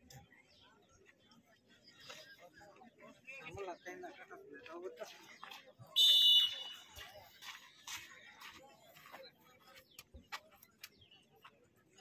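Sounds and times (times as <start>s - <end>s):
referee's whistle blast: 6.0s - 6.8s.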